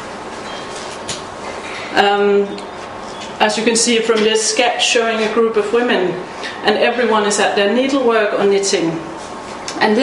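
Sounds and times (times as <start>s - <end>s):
room hiss and rumble: 0.0s - 10.0s.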